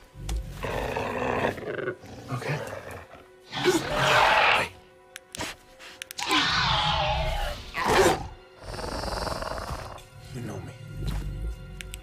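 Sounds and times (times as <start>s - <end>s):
soft music: 0.0s - 12.0s
dinosaur growls: 6.4s - 10.0s.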